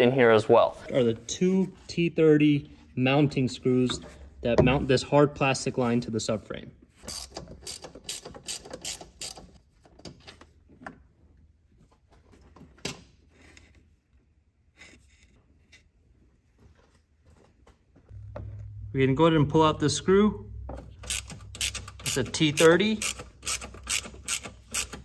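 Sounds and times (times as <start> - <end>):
ratchet wrench clicking: 7.1 - 9.5, 21.0 - 25.0.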